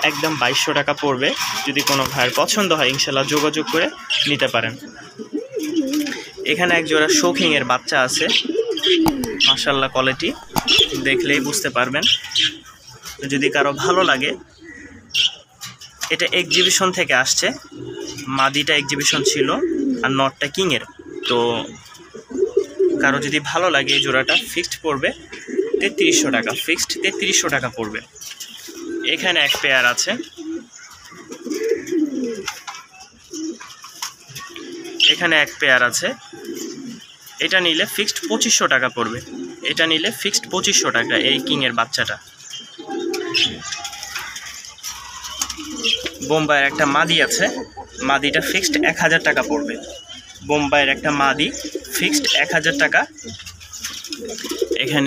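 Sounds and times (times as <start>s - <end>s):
pigeons cooing: 0.0s - 55.0s.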